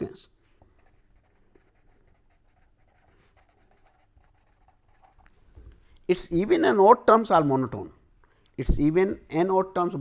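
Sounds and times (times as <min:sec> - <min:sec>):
pen scratching on paper: 0:00.6 - 0:05.3.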